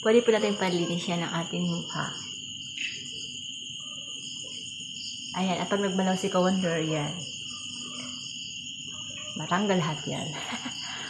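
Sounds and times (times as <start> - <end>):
insects chirring: 0.0 - 11.0.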